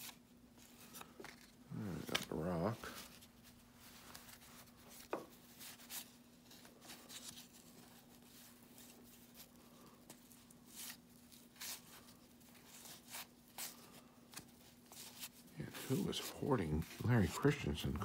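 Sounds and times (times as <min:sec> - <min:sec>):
cards flipped by hand: 0:00.0 - 0:03.2
faint steady hum: 0:00.0 - 0:18.0.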